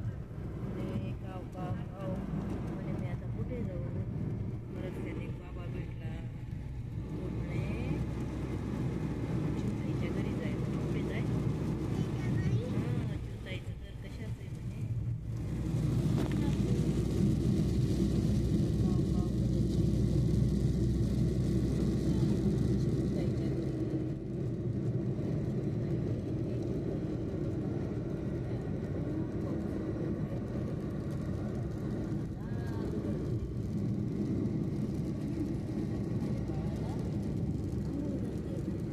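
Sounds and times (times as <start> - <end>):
car cabin road rumble: 0.0 - 38.9.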